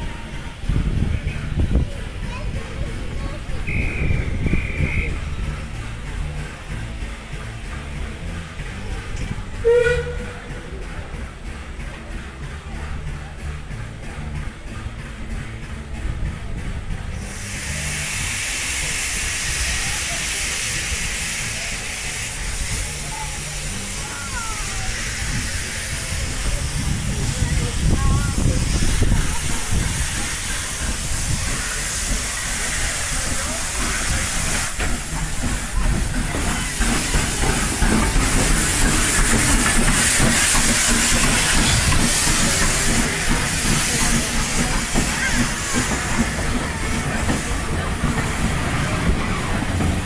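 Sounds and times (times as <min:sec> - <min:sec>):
locomotive low rumble: 0:00.0 - 0:50.0
steam hissing: 0:00.0 - 0:50.0.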